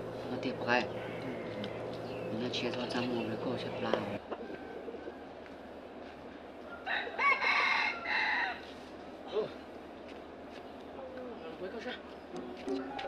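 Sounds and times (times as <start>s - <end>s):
rooster crowing: 4.3s - 5.6s, 6.6s - 8.7s.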